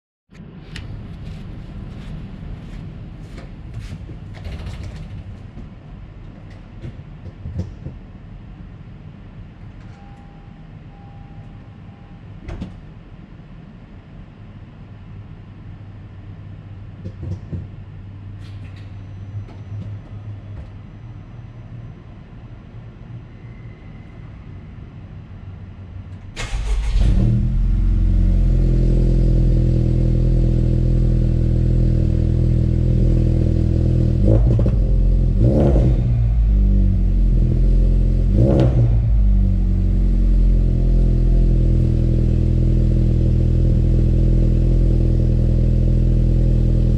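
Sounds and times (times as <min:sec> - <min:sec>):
car engine starting and idling: 0:26.1 - 0:46.9
engine throttle blips: 0:33.0 - 0:42.4.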